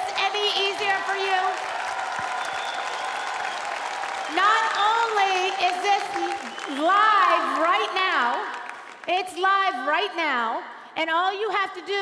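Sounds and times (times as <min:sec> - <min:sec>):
audience applauding: 0:00.0 - 0:09.1.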